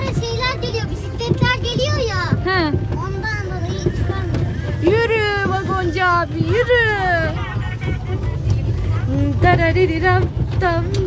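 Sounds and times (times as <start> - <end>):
tourist train rumble: 0.0 - 11.0.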